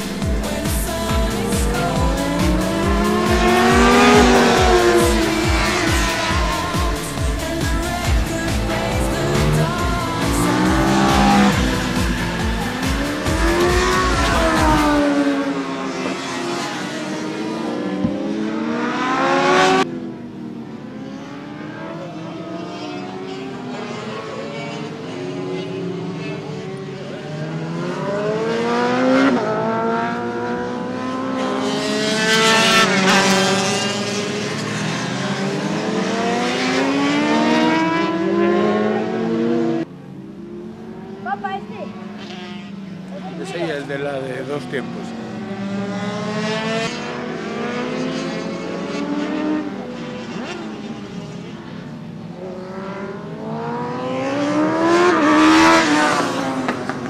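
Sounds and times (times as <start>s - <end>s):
motorcycle engines revving: 0.0s - 57.0s.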